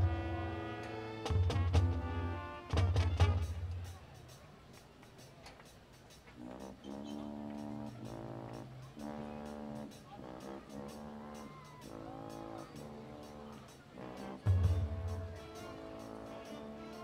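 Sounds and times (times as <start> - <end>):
low brass and drum hit: 0.0 - 4.0, 14.0 - 16.3
marching band brass chords: 0.0 - 17.0.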